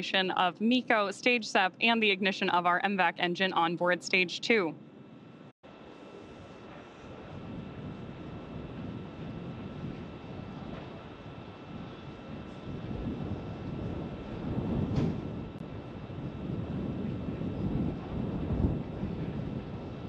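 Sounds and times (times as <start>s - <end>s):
faint electronic hum tones: 0.0s - 20.0s
rocket engine rumble: 5.9s - 20.0s.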